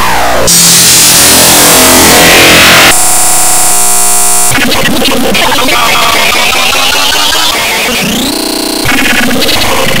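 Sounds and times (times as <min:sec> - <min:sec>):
distorted electronic noise: 0:00.0 - 0:10.0
buzzing steady tones: 0:00.5 - 0:04.6.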